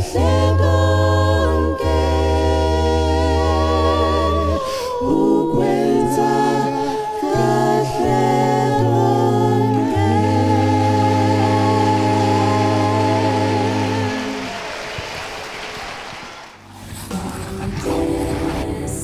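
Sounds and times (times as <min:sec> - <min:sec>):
vocal group singing a cappella: 0:00.0 - 0:15.1, 0:16.7 - 0:19.0
music: 0:00.0 - 0:19.0.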